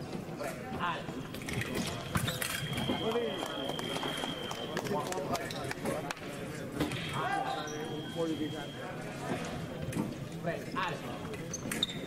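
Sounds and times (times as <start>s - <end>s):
voices in a hall: 0.0s - 12.0s.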